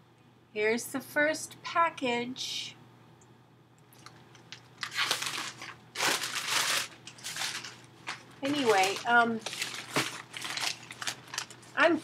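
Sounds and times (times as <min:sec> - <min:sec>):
plastic packaging crinkling: 0:04.0 - 0:12.0.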